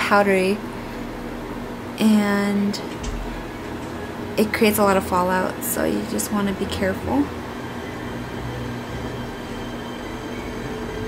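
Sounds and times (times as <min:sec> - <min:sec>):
background hum and hiss: 0:00.0 - 0:11.0
faint steady tones: 0:00.0 - 0:11.0.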